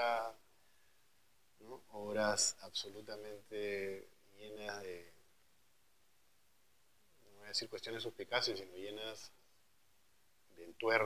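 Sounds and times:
man's voice: 1.6 - 4.0.

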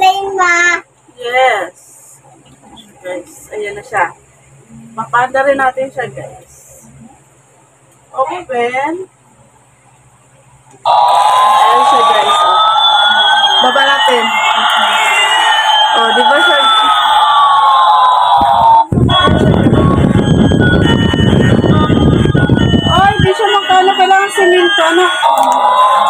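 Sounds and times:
steady buzz: 10.8 - 25.3
toy siren-like wail: 10.9 - 23.3.

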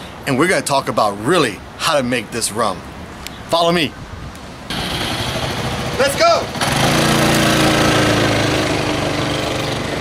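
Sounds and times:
scooter engine idling: 4.7 - 10.0.

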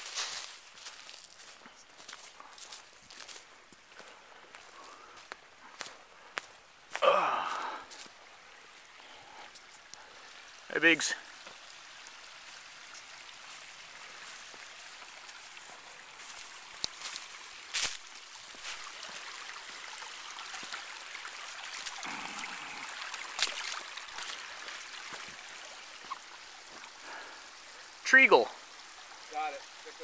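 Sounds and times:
creek water running over rocks: 0.0 - 30.0.

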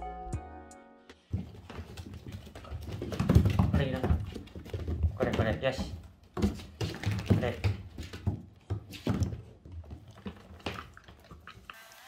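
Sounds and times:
person speaking: 3.6 - 4.4, 5.0 - 6.1, 7.2 - 7.9.

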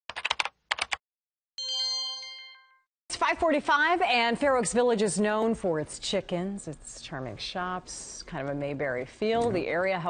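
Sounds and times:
computer keys clicking: 0.1 - 1.0
bright multi-tone chime: 1.6 - 2.9.

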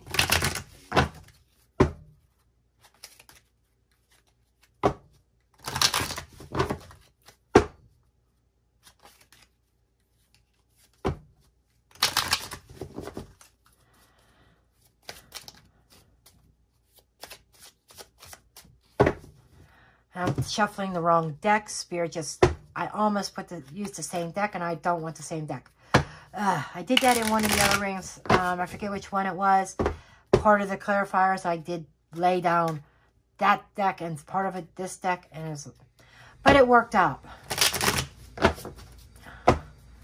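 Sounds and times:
cards being shuffled: 0.0 - 7.5, 8.8 - 14.0, 14.8 - 19.2, 26.9 - 28.6, 37.4 - 39.2.

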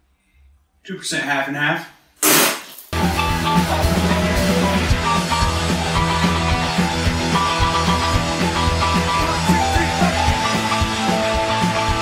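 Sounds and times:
rock music with guitar: 3.0 - 12.0.

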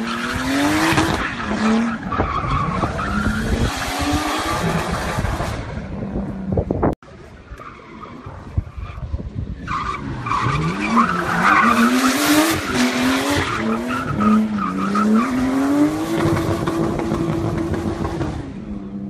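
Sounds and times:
tyres skidding: 0.0 - 18.9.

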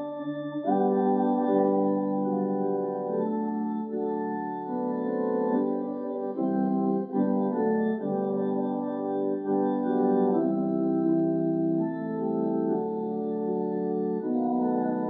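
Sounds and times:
church organ playing a hymn: 0.0 - 15.0.

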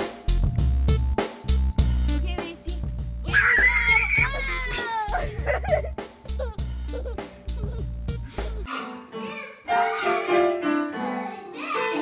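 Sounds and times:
music with bass beat: 0.0 - 3.3, 4.2 - 8.7
toddler squealing: 3.3 - 5.7.

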